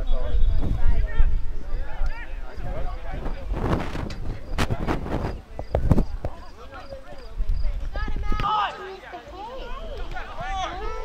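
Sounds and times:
wind rumble on microphone: 0:00.0 - 0:08.5.

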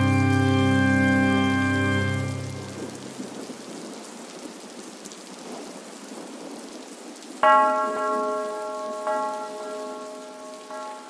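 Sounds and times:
organ music: 0:00.0 - 0:03.1
rain drop ticks: 0:00.0 - 0:05.6, 0:06.6 - 0:11.0
steady rain hiss: 0:00.0 - 0:11.0.

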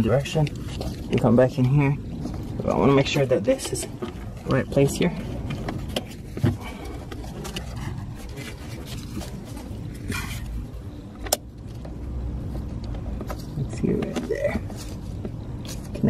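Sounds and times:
cable rustling: 0:00.0 - 0:16.0
steady low rumble: 0:00.0 - 0:16.0.

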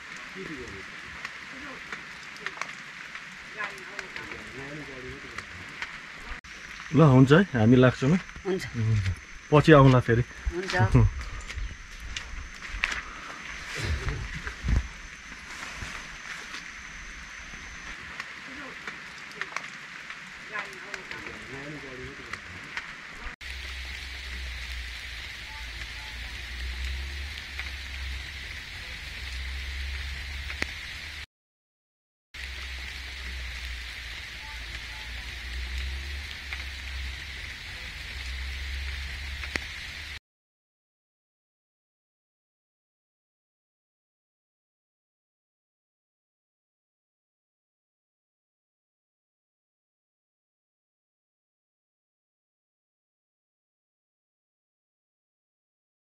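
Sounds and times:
rain hissing: 0:00.0 - 0:31.3, 0:32.4 - 0:40.2
voices: 0:00.3 - 0:02.8, 0:03.5 - 0:11.2, 0:13.7 - 0:14.7, 0:18.4 - 0:19.8, 0:20.4 - 0:23.4, 0:24.3 - 0:30.7, 0:34.0 - 0:39.6
low rumble: 0:23.2 - 0:31.2, 0:32.4 - 0:40.2.

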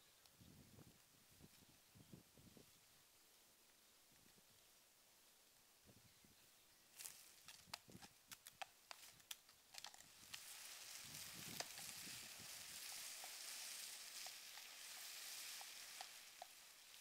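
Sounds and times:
plastic bag dragged on tarmac: 0:10.0 - 0:17.0.

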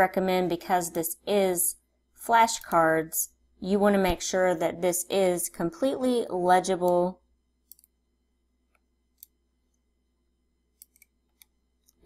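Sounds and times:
low steady hum: 0:00.0 - 0:12.0
computer mouse clicking: 0:07.6 - 0:08.0, 0:08.7 - 0:09.4, 0:10.8 - 0:12.0.

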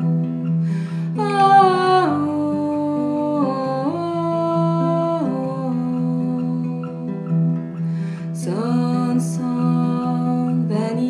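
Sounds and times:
classical guitar: 0:00.0 - 0:11.0
woman singing wordless lullaby: 0:00.0 - 0:11.0.

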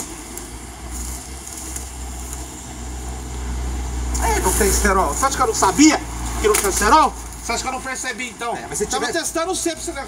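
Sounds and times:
background noise: 0:00.0 - 0:10.0
vehicle engine idling: 0:00.0 - 0:10.0.

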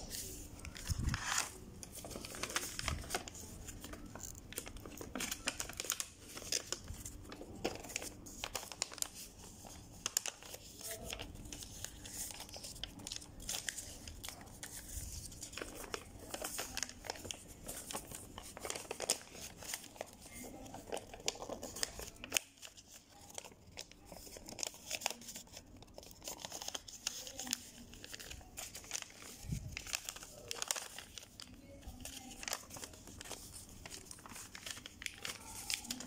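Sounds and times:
paper rustling and crinkling: 0:00.0 - 0:36.0.

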